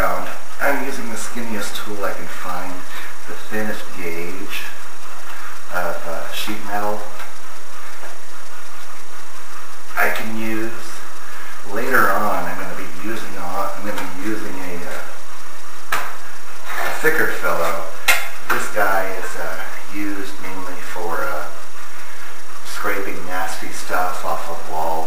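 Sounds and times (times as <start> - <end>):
man talking indistinctly: 0.0 - 9.0, 9.9 - 15.3, 16.0 - 25.0.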